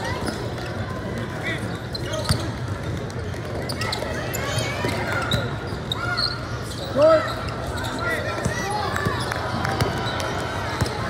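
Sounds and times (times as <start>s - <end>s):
short squeak: 1.7s - 2.5s, 3.7s - 8.2s.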